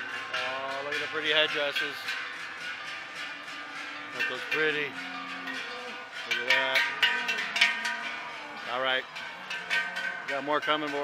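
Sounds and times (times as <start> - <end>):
large cowbells clanging: 0.0 - 11.0.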